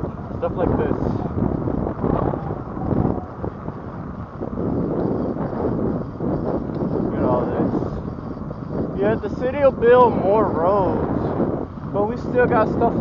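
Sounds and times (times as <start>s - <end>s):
bike rattling over rough asphalt: 0.0s - 13.0s
wind buffeting microphone: 0.0s - 13.0s.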